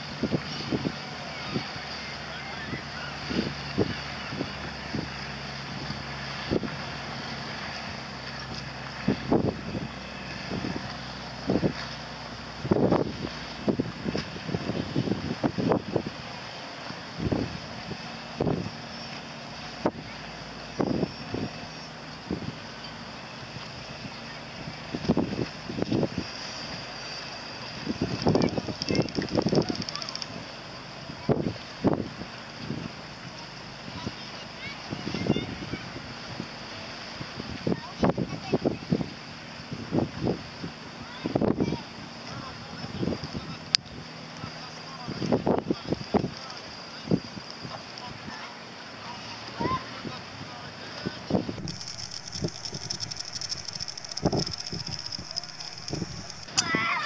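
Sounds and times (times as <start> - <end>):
outboard motor humming: 0.0 - 37.2, 51.4 - 57.0
wind buffeting microphone: 51.4 - 56.8.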